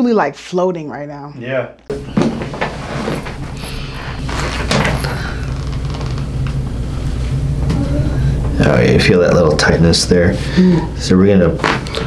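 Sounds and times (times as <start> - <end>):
steady low hum: 1.7 - 12.0
clothing rustling: 2.0 - 7.2.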